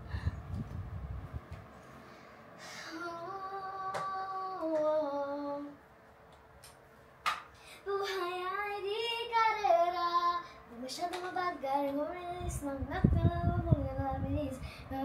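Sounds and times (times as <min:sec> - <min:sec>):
young woman singing: 0:02.8 - 0:05.8, 0:07.8 - 0:15.0.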